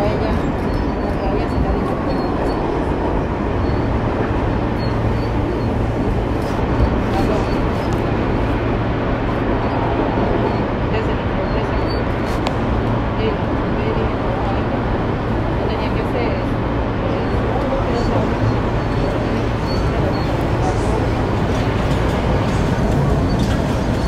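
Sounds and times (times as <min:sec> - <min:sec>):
subway train rumbling past: 0:00.0 - 0:24.0.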